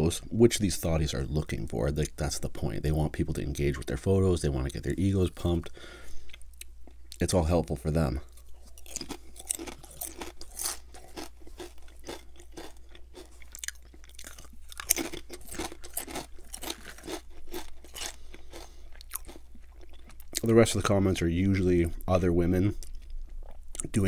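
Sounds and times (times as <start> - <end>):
chewing crisp potato chips: 8.2 - 20.7, 22.7 - 24.0.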